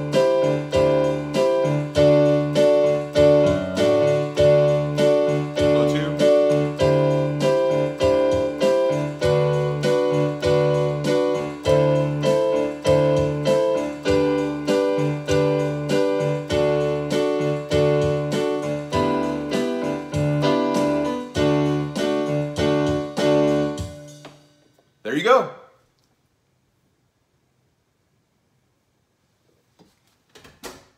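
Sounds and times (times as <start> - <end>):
electronic keyboard playing a scale: 0.0 - 24.2
held low keyboard chords: 0.0 - 24.3.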